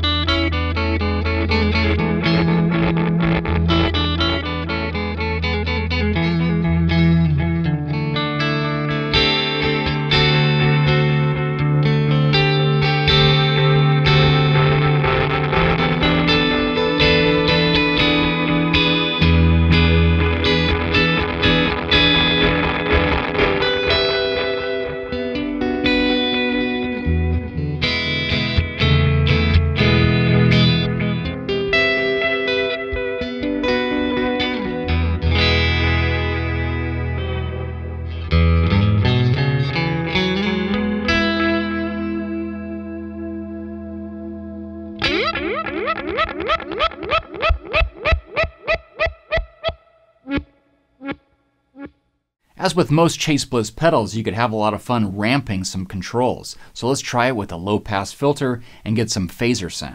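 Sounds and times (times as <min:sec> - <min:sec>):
electric guitar with delay echoes: 0:00.0 - 0:51.9.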